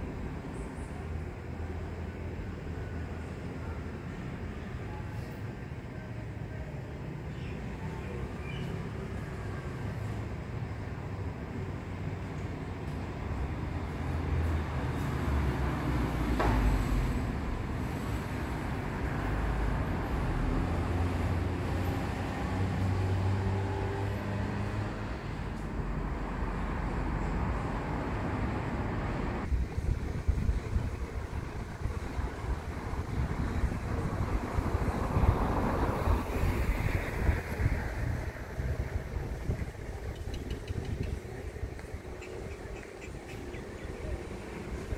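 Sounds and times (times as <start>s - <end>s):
vehicle passing: 13.7s - 40.4s.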